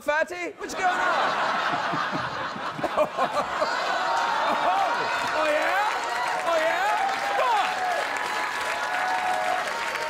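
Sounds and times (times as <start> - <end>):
studio audience laughing: 0.6 - 5.9.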